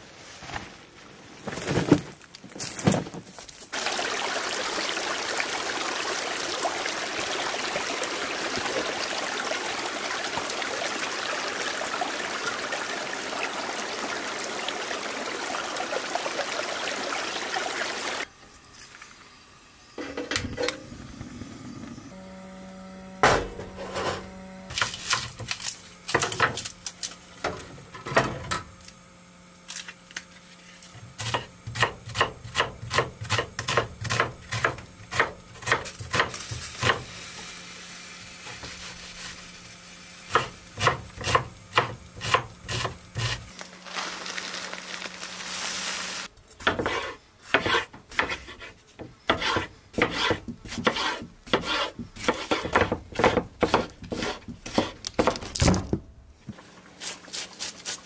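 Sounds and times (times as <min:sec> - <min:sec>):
knife cutting on wooden board: 0:46.6 - 0:55.0.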